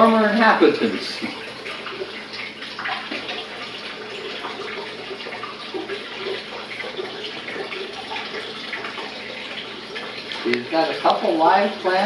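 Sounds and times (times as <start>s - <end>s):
water running and splashing: 0.0s - 12.0s.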